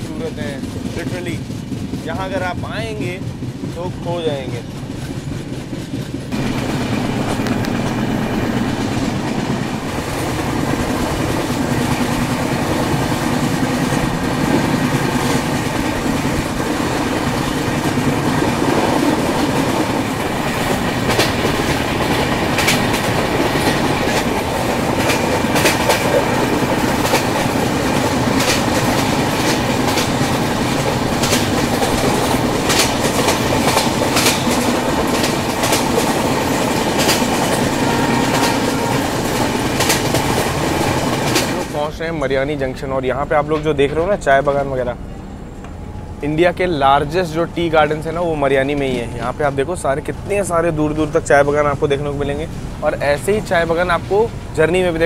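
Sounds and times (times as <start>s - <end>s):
wheels clicking over rail joints: 0.0s - 44.5s
train wheels rumbling on track: 0.0s - 55.0s.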